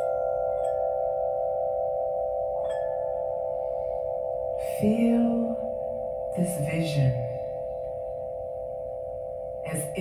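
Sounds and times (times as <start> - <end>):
crystal singing bowl ringing: 0.0 - 10.0.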